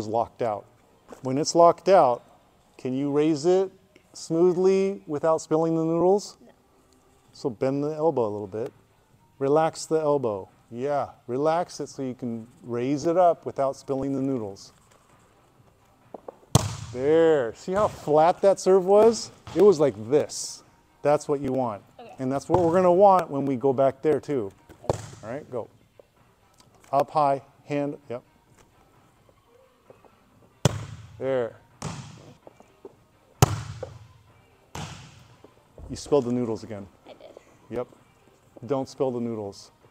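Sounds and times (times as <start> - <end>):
hand slapping volleyball: 16.2 - 17.0, 19.0 - 19.8, 21.4 - 21.7, 22.5 - 25.4, 30.6 - 31.2, 31.8 - 32.3, 33.4 - 34.1, 34.7 - 35.5.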